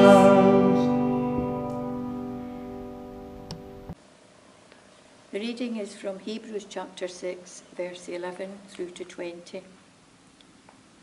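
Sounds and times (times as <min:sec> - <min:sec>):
woman speaking: 0:05.3 - 0:09.8.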